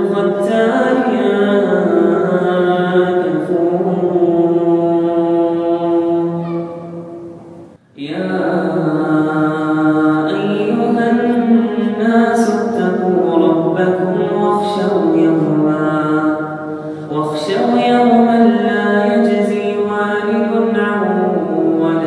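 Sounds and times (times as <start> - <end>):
man reciting melodically: 0.0 - 6.6, 7.8 - 22.0.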